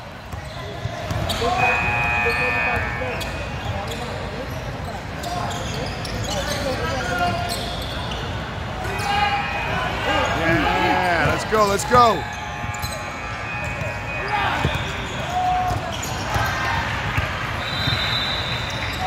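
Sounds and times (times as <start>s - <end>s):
people shouting and talking: 0.0s - 19.0s.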